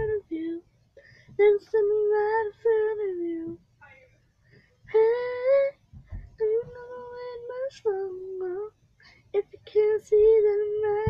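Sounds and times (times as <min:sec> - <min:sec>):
girl singing softly: 0:00.0 - 0:04.1, 0:04.9 - 0:11.0.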